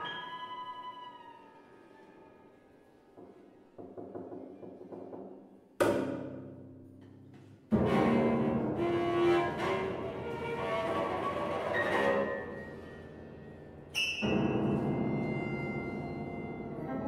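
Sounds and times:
cello and piano playing: 0:07.7 - 0:17.0.

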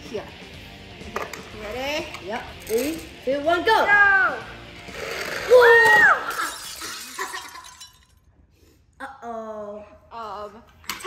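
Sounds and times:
loud high shout: 0:05.5 - 0:06.4.

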